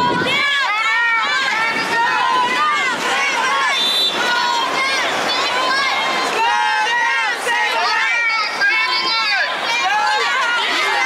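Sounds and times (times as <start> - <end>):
young people shouting and chanting: 0.0 - 11.0.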